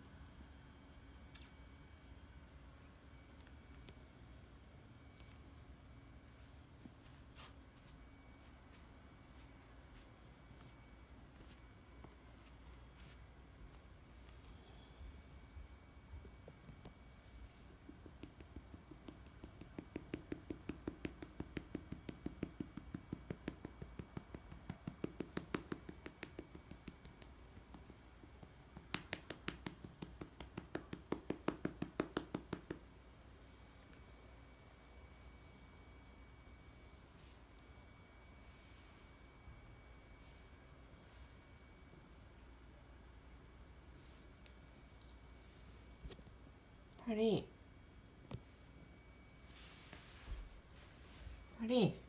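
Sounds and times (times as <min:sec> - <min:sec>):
hand patting a cat: 0:17.6 - 0:32.9.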